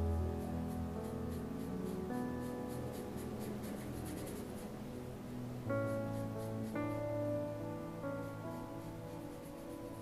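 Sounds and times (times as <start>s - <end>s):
paintbrush scratching on paper: 0.0s - 4.7s, 5.8s - 7.0s, 8.0s - 10.0s
soft piano music: 0.0s - 10.0s.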